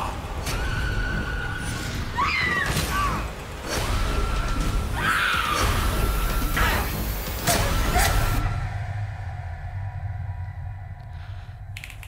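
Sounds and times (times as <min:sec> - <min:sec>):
low rumbling drone: 0:05.7 - 0:12.0.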